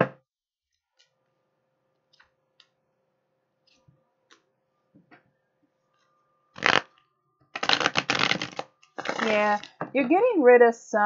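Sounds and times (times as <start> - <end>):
riffle shuffle of cards: 6.6 - 6.8, 7.6 - 9.7
cards fluttering: 6.6 - 6.9, 7.6 - 9.7.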